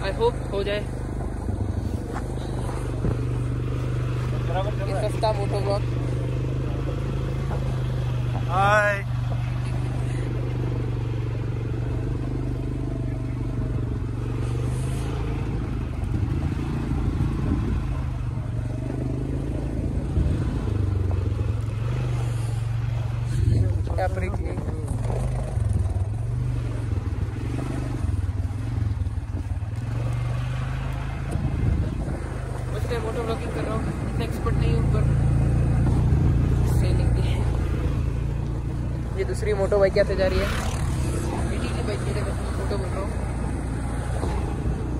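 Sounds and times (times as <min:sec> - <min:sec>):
quad bike engine running: 0:00.0 - 0:44.9.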